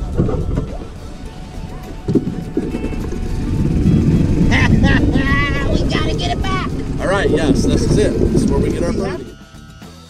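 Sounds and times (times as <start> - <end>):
golf cart low rumble: 0.0 - 9.5.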